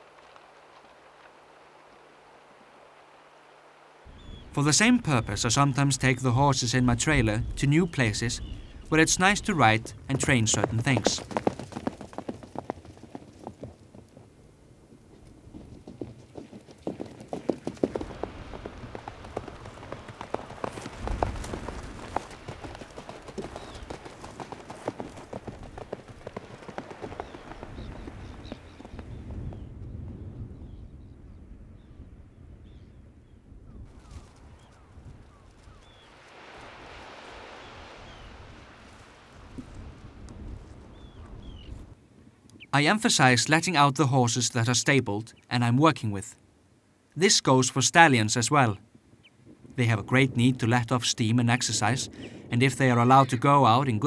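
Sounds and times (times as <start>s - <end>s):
horse hoofbeats on sand: 8.5s - 29.8s, 33.8s - 42.0s.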